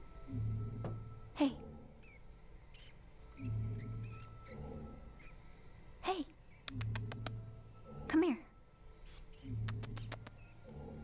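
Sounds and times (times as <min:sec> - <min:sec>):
low musical drone: 0:00.0 - 0:06.2, 0:06.8 - 0:11.0
mouse squeaking: 0:02.0 - 0:05.7, 0:06.4 - 0:07.4, 0:09.0 - 0:10.8.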